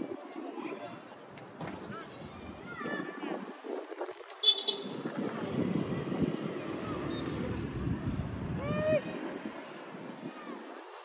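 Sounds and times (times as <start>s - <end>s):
distant city traffic: 4.3s - 11.0s
car horn toot: 4.4s - 5.0s.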